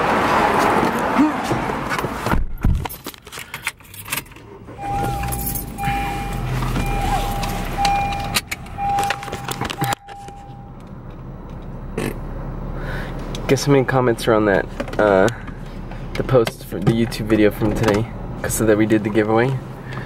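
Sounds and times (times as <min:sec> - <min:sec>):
keys jangling: 0:02.8 - 0:06.4
car warning chime beeping: 0:04.7 - 0:10.8.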